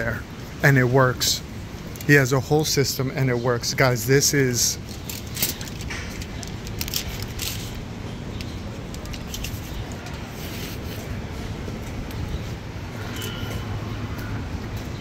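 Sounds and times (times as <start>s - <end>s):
city street traffic: 0.0s - 15.0s.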